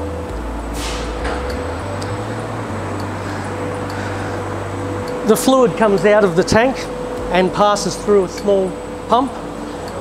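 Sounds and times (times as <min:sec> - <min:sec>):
machinery hum: 0:00.0 - 0:10.0
steady mid-pitched tone: 0:00.0 - 0:10.0
brief hiss: 0:00.8 - 0:01.2.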